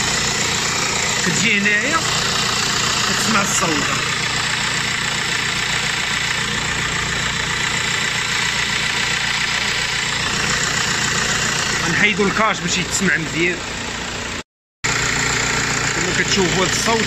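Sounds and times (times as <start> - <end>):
diesel engine idling: 0.0 - 17.0
scratchy alternator rasp: 0.0 - 17.0.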